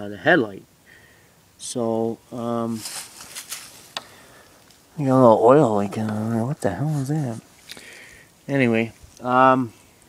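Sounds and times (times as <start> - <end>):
faint rustling: 2.3 - 10.0.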